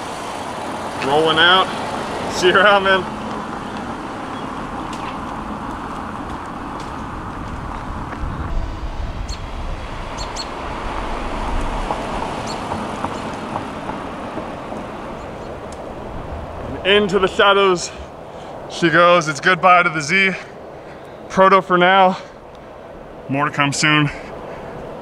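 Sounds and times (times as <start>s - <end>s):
car engine running: 0.0s - 18.2s
traffic noise: 0.0s - 25.0s
tyre noise on road: 0.0s - 25.0s.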